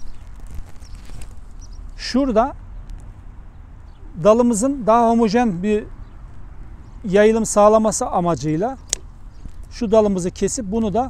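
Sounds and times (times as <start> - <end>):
secateurs clicks and rustles: 0.0 - 1.6, 8.8 - 9.8
secateurs snipping: 8.8 - 9.6.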